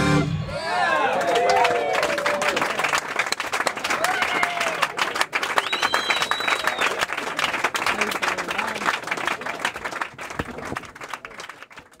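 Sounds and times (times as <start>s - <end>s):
audience clapping and cheering: 0.6s - 12.0s
long whistle: 5.6s - 7.0s.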